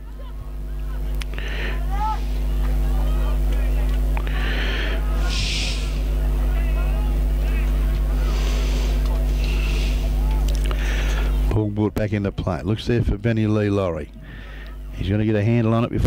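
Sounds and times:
spectators and players calling out: 0.0 - 11.5
low rumble and hum: 0.0 - 16.0
loud hissy shouts: 1.7 - 2.3, 4.3 - 7.6.

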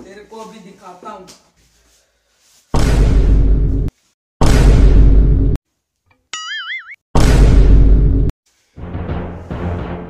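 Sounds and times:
cartoon boing: 6.4 - 7.0.

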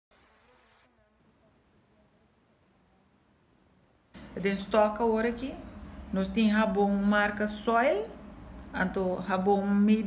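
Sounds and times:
soft hiss: 0.1 - 6.2.

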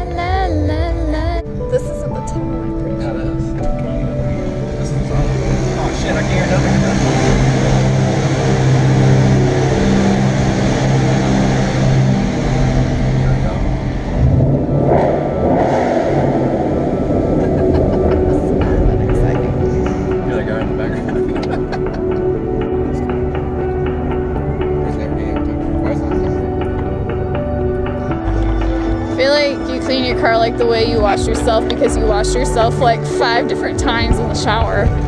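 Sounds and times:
car engine drone in cabin: 0.0 - 35.0.

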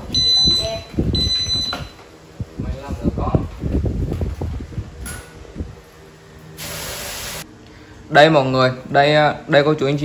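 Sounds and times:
short steady hiss: 6.6 - 7.4.

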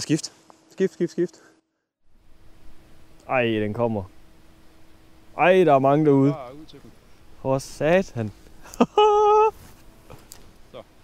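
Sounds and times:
outdoor ambience: 0.0 - 11.0
man's high-pitched excited cry: 8.7 - 9.6.

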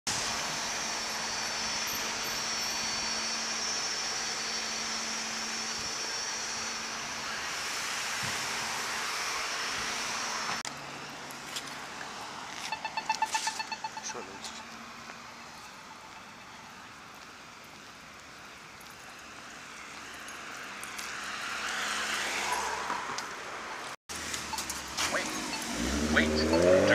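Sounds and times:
cars passing: 0.1 - 26.9
crossing signal beeps: 12.7 - 14.8, 24.5 - 26.9.

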